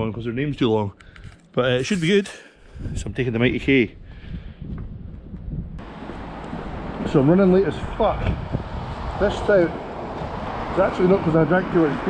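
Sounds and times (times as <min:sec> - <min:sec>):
wind buffeting microphone: 0:02.7 - 0:12.0.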